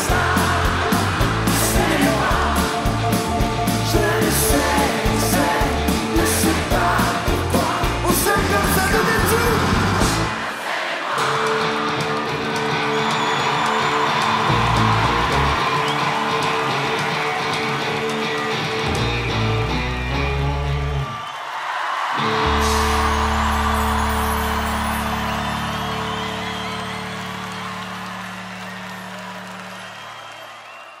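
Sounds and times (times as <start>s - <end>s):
rock band held chords: 0.0s - 10.6s, 11.2s - 21.2s, 22.2s - 30.4s
drums: 0.0s - 21.4s, 22.0s - 30.4s
crowd cheering and whooping: 0.0s - 31.0s.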